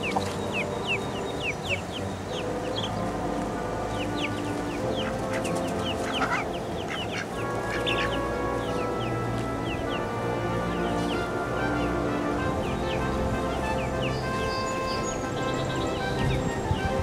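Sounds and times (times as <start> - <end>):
chickens peeping: 0.0 - 11.3
soft background music: 0.0 - 17.0.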